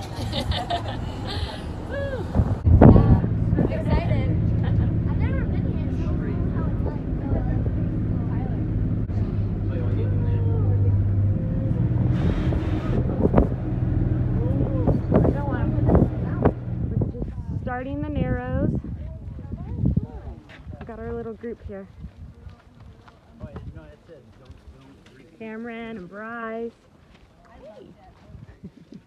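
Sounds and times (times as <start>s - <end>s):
bus engine hum: 0.0s - 18.8s
passengers chatting: 0.0s - 21.9s.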